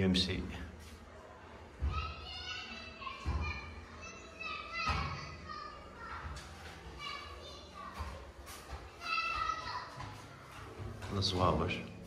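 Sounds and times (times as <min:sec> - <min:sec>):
children shouting while playing: 0:01.8 - 0:06.4, 0:09.0 - 0:10.1.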